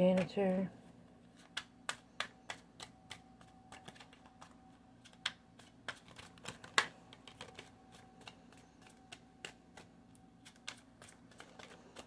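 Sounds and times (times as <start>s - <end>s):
cards being shuffled: 1.1s - 12.0s.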